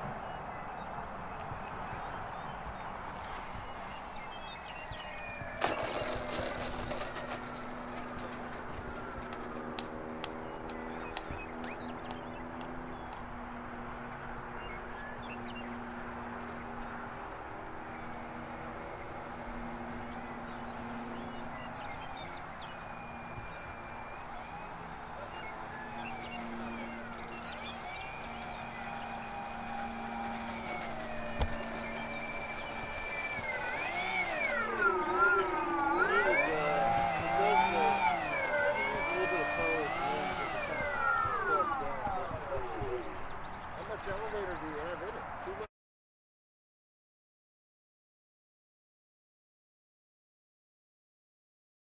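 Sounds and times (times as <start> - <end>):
electric motors and propellers whining: 0.0 - 45.6.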